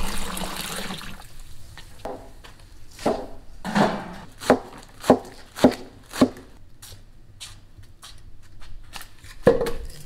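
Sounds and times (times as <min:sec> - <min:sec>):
cleaver chopping on wooden board: 0:03.9 - 0:06.5.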